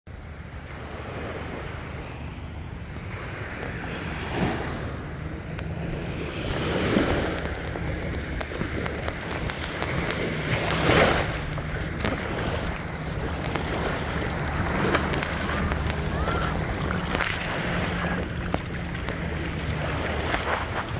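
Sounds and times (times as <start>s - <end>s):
low steady rumble: 0.1s - 20.9s
small waves washing onto sand: 0.3s - 20.9s.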